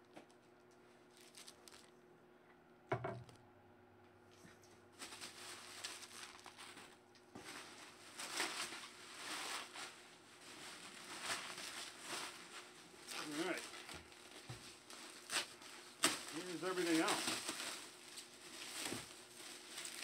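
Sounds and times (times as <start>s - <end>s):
bubble wrap crinkling: 0.0s - 2.0s, 4.9s - 20.0s
bubble wrap crackles: 1.0s - 2.0s, 4.9s - 20.0s.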